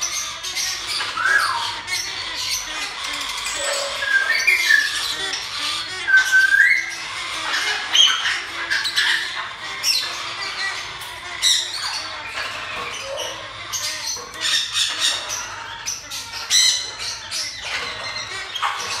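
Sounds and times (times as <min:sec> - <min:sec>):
parrots squawking: 0:00.0 - 0:19.0.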